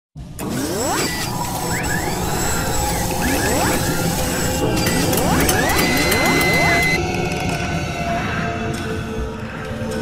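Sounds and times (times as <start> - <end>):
dense mechanical whirring: 0.4 - 7.8.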